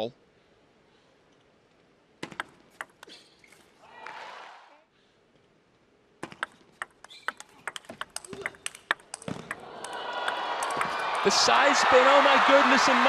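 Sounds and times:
table tennis ball clicking: 0:02.2 - 0:03.1, 0:06.2 - 0:11.0
crowd noise: 0:09.0 - 0:13.0.

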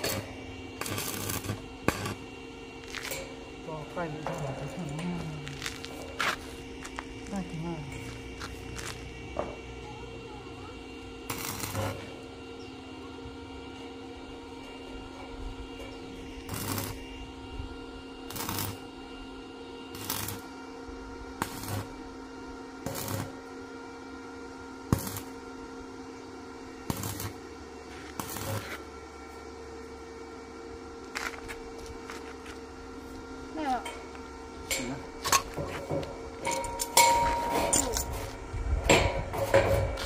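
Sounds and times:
arc welder crackling: 0:00.0 - 0:40.0
steady hum: 0:00.0 - 0:40.0.

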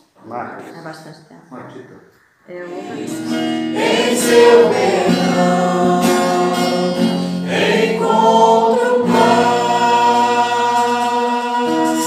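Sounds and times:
group singing worship song: 0:02.5 - 0:12.0
acoustic guitar: 0:02.6 - 0:12.0.

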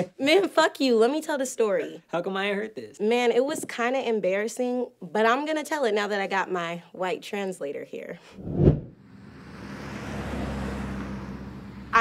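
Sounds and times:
car driving past: 0:08.4 - 0:12.0.

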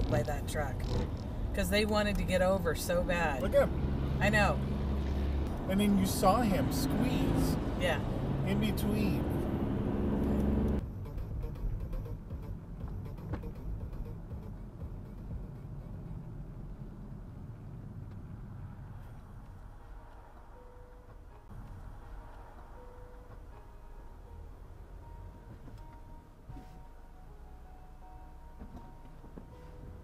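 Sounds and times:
car road and engine rumble: 0:00.0 - 0:30.0
faint musical tones: 0:18.8 - 0:30.0.

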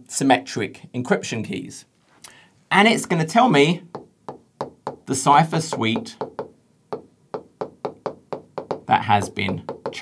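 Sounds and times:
stylus tapping on glass screen: 0:03.9 - 0:10.0.

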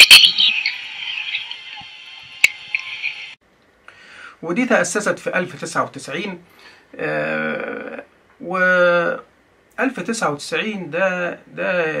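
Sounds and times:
faint steady tones: 0:00.0 - 0:03.4
high-pitched hiss: 0:00.0 - 0:03.4.

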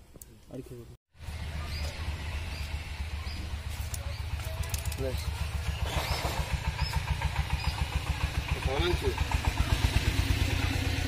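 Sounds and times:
small engine idling: 0:01.2 - 0:11.0.

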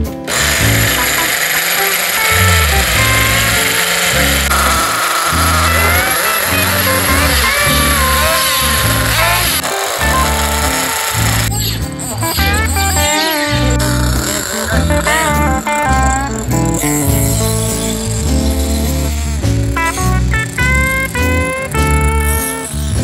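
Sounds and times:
guitar music with bass line: 0:00.0 - 0:23.0
model car engine revving: 0:00.0 - 0:23.0.

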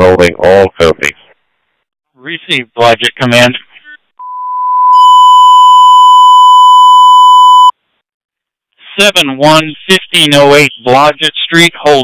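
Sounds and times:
radio alert tone beep: 0:04.2 - 0:07.7.

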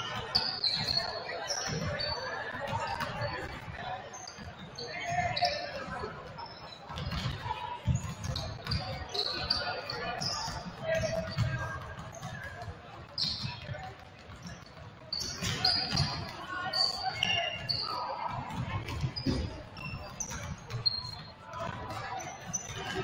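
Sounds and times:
basketballs bouncing on hardwood floor: 0:06.9 - 0:09.6, 0:10.2 - 0:16.4, 0:18.3 - 0:23.0.

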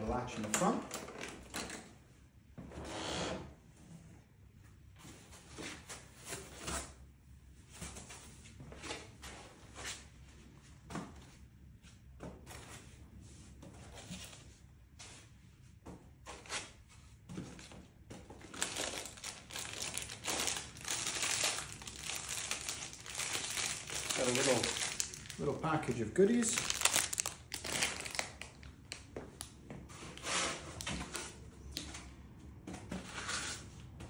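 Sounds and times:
foam packing rustling: 0:18.4 - 0:29.0
plastic wrapping crinkling: 0:18.4 - 0:29.5.

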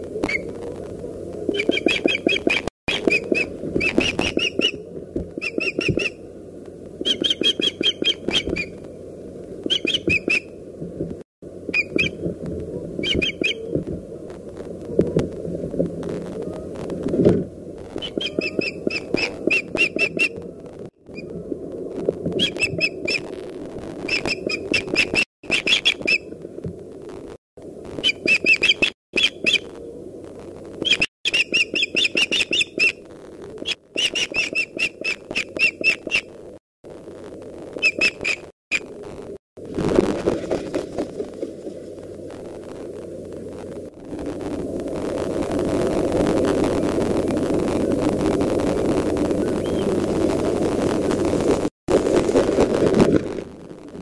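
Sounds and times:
low background rumble: 0:00.0 - 0:24.8, 0:39.0 - 0:54.0
osprey piping calls: 0:01.5 - 0:06.2, 0:07.0 - 0:08.8, 0:09.6 - 0:10.5, 0:11.7 - 0:12.2, 0:13.0 - 0:13.8, 0:18.0 - 0:20.4, 0:24.1 - 0:26.2, 0:28.0 - 0:29.7, 0:30.8 - 0:33.0, 0:33.6 - 0:36.3, 0:37.8 - 0:38.9, 0:49.4 - 0:50.0.

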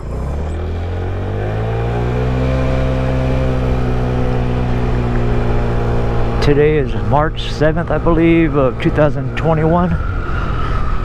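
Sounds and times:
scooter engine pulling away: 0:00.0 - 0:09.4.

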